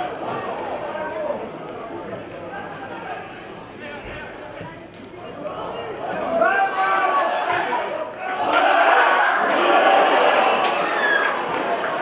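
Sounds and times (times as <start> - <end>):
footballers shouting: 5.7 - 12.0.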